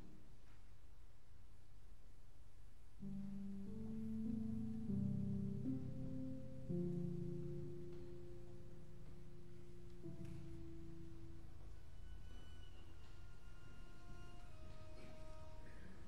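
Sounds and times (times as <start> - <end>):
soft piano trio held notes: 3.0 - 16.0.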